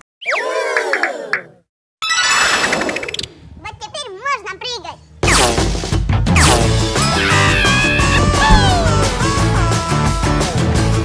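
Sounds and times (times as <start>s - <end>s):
sudden burst: 7.8s - 9.9s.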